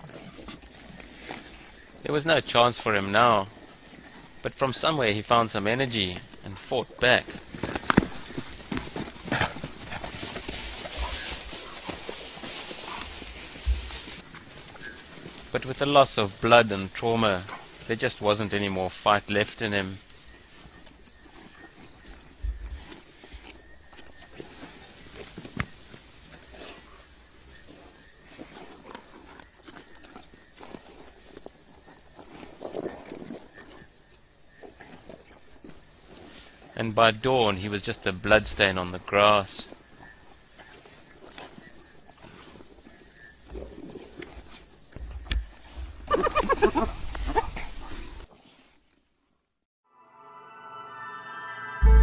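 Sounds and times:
hyenas feeding crackles and rustles: 0.0 - 2.0, 2.9 - 4.5, 7.2 - 36.8, 37.4 - 49.0
crickets chirring: 0.0 - 48.3
night insects chorus: 0.0 - 48.3
animals scuffling: 7.2 - 18.6, 19.9 - 30.2
animal calls: 46.1 - 47.7.

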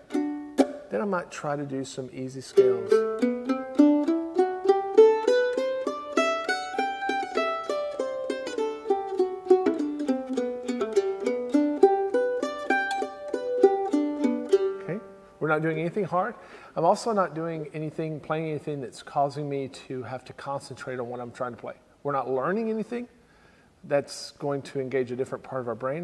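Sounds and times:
mandolin playing a scale: 0.0 - 1.4, 2.3 - 15.9.

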